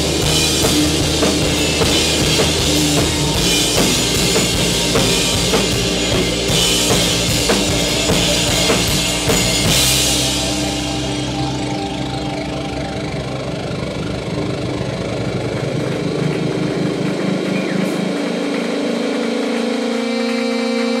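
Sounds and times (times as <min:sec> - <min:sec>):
live rock band playing: 0:00.0 - 0:14.1.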